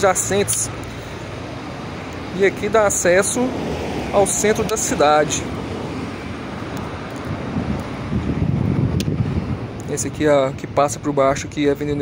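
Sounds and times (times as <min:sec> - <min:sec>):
wind buffeting microphone: 0:01.2 - 0:12.0.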